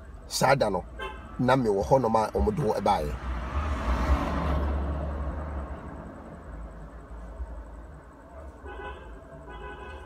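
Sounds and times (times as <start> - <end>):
vehicle passing close by: 2.4 - 6.8.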